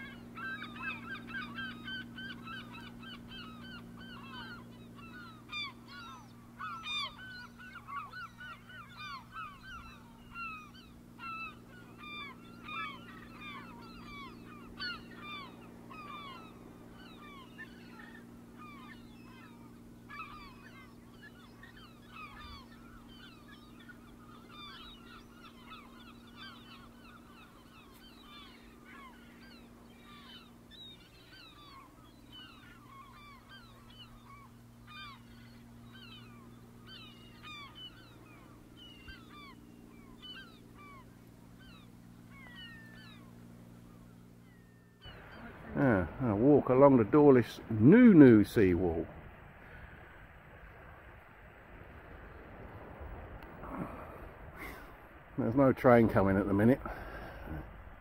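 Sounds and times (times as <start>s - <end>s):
faint low hum: 0.0s - 58.0s
flock of birds chirping: 0.0s - 58.0s.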